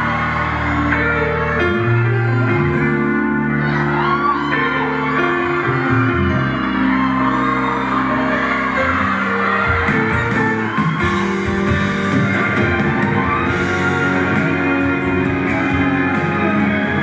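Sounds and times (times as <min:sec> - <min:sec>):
audience shouts: 0:00.0 - 0:17.0
live band playing a ballad: 0:00.0 - 0:17.0.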